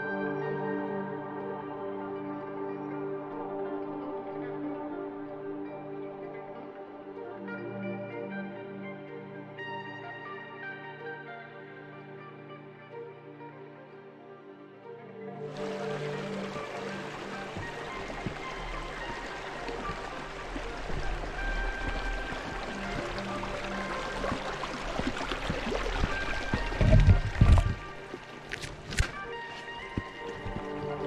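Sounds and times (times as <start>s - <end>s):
background music: 0.0s - 31.0s
stream rushing: 15.5s - 31.0s.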